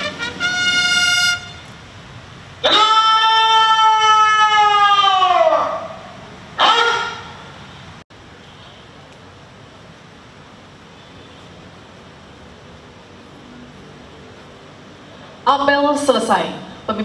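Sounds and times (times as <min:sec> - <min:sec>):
bugle call: 0:00.0 - 0:01.7, 0:06.6 - 0:07.4.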